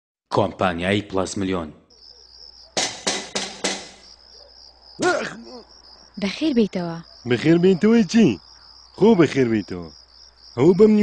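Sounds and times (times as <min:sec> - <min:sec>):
crickets chirping: 0:00.4 - 0:11.0
knocks on a door: 0:02.8 - 0:04.1.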